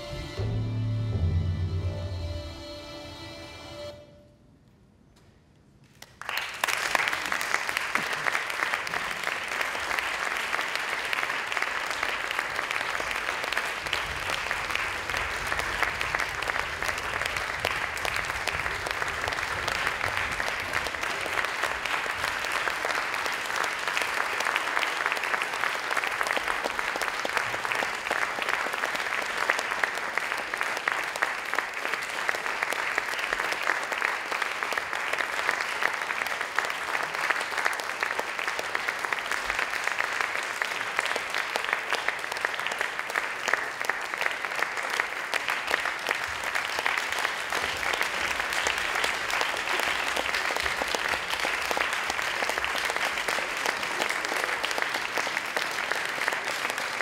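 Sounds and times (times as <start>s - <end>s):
audience applauding: 5.9s - 57.0s.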